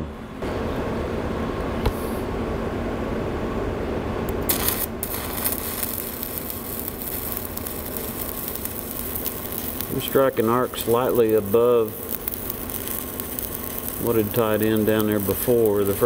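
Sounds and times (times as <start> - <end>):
welding arc frying hiss: 4.4 - 16.0.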